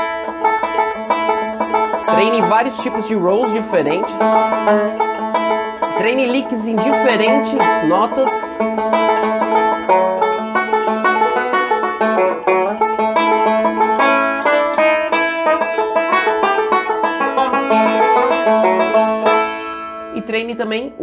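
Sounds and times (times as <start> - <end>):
banjo picking fast notes: 0.0 - 21.0.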